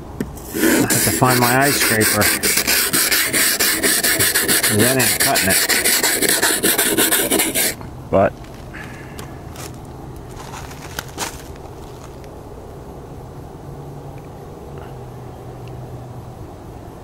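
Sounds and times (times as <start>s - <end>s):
short scrape: 0.3s - 7.8s.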